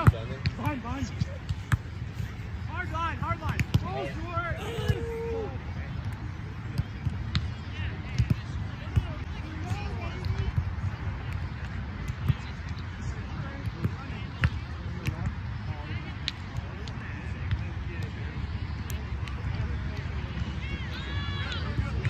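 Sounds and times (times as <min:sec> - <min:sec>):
faint voices: 0:00.0 - 0:22.0.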